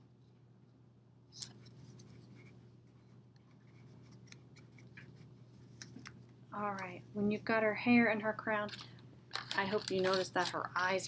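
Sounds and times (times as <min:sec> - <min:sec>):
steady low hum: 0:00.0 - 0:11.0
paper rustling: 0:08.7 - 0:11.0.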